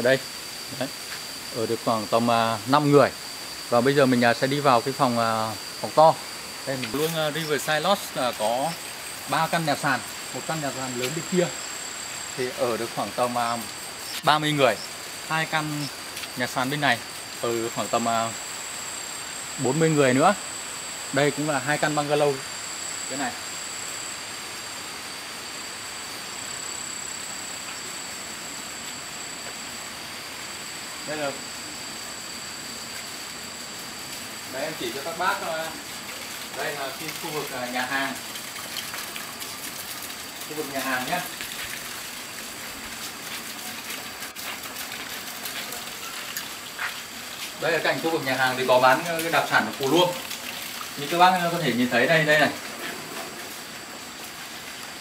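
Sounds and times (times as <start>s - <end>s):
high steady whine: 0.0s - 36.0s
flowing stream: 5.8s - 18.2s, 33.7s - 55.0s.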